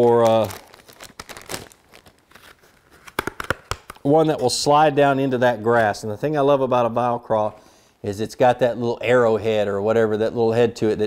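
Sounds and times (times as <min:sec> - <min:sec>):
plastic packaging crinkling: 0:00.0 - 0:04.1
small crackles: 0:00.0 - 0:04.1.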